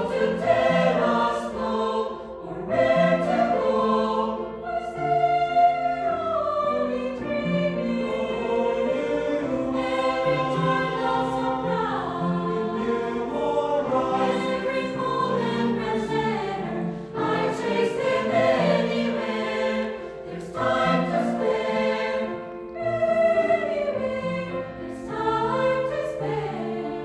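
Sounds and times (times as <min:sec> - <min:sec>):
mixed choir singing chords: 0:00.0 - 0:27.0.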